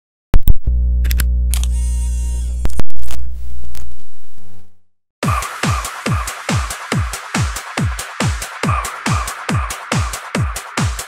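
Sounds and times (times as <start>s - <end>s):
sharp clicks: 0.4s - 1.8s
deep bass note: 0.4s - 4.8s.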